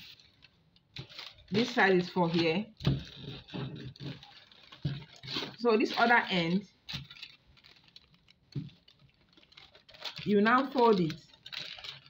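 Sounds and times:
paper crinkling and rustling: 0.0s - 12.0s.

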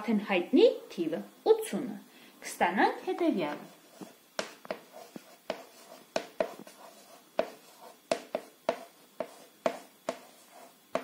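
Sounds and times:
chalk tapping and scratching on board: 3.2s - 11.0s.

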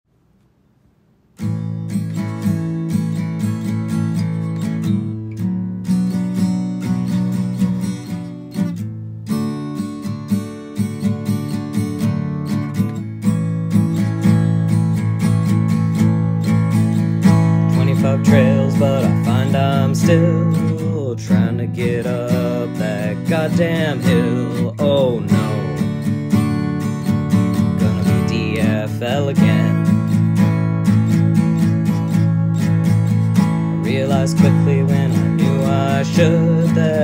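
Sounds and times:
acoustic guitar strumming: 1.3s - 37.0s.

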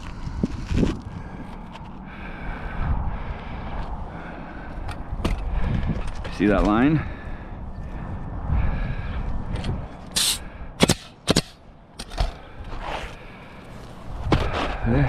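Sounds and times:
air hiss: 10.2s - 10.4s
nail gun firing into shingles: 10.2s - 12.4s.

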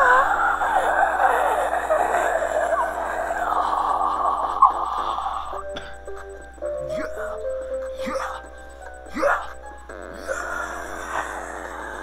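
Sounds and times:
many voices wailing and crying: 0.0s - 7.1s, 9.2s - 12.0s.

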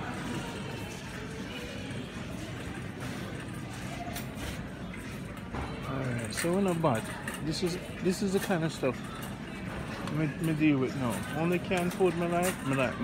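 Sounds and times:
faint in-store music: 0.0s - 13.0s
low murmur of shop: 0.0s - 13.0s.

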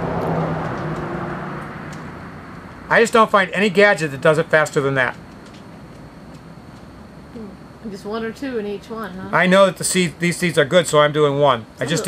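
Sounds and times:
low hum: 0.0s - 12.0s
man speaking: 2.9s - 5.2s, 9.3s - 12.0s.

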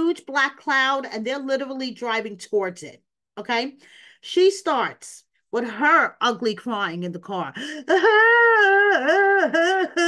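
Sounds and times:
woman wailing: 7.9s - 10.0s.

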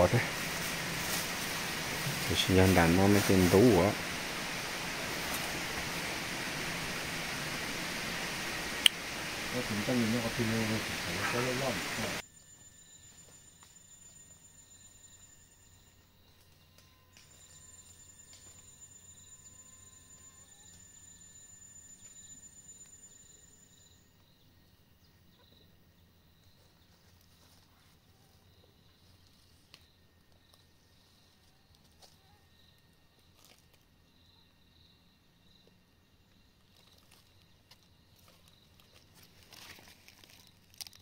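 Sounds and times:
faint forest ambience: 0.0s - 41.0s
faint high chirp: 12.2s - 25.7s
thin high-pitched buzz: 16.6s - 24.0s.

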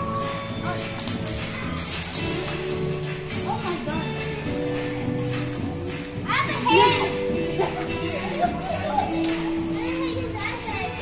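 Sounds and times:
background music: 0.0s - 11.0s
children chattering: 3.2s - 4.6s, 5.6s - 11.0s.

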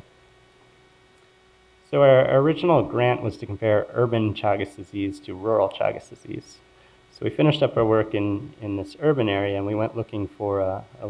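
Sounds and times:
faint electrical hum: 0.0s - 11.0s
man speaking: 1.9s - 11.0s.

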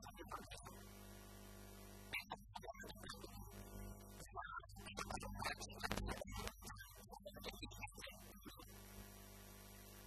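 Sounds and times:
low electrical hum with hiss: 0.0s - 2.2s, 3.0s - 4.3s, 8.3s - 10.0s.

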